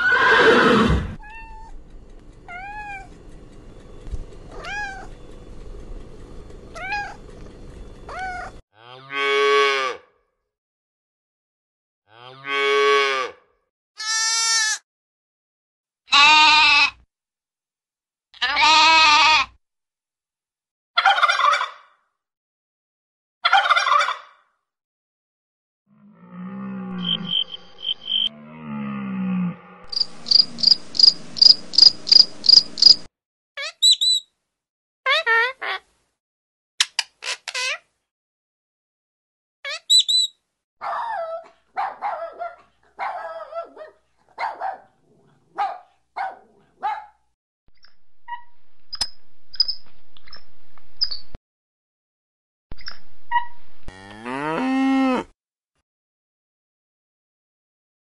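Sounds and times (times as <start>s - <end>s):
cat meowing: 0.0s - 1.7s, 2.5s - 3.1s, 4.5s - 5.1s, 8.1s - 8.5s
animal calls: 8.1s - 8.6s
young goat bleating: 14.0s - 14.8s, 16.1s - 17.0s, 18.4s - 19.5s.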